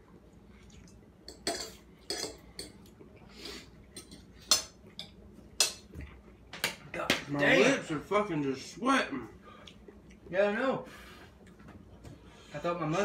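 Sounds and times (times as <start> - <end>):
forks clinking on plates: 1.3 - 2.8.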